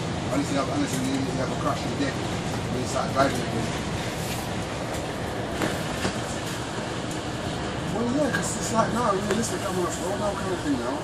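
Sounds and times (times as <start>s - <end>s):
bus running on road: 0.0s - 11.0s.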